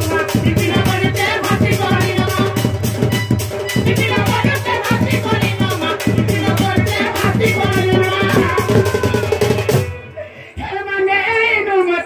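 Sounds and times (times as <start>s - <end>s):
person singing: 0.0s - 2.8s, 3.8s - 12.0s
barrel drum beating: 0.0s - 10.0s.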